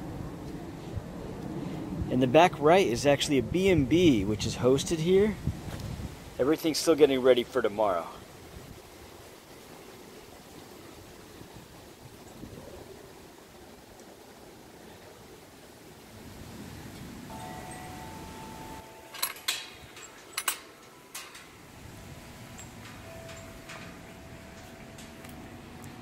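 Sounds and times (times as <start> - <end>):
faint outdoor background: 0.0 - 26.0
sharp metal clinks: 17.3 - 21.7, 22.4 - 25.4
metal chimes ringing: 17.3 - 26.0.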